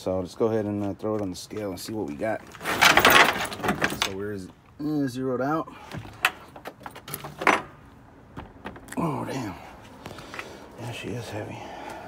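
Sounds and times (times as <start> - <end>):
tools clicking and rattling: 2.5 - 4.2.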